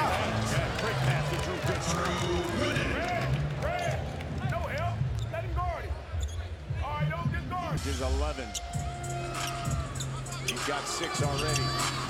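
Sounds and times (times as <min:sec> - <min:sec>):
murmur of arena crowd: 0:00.0 - 0:12.0.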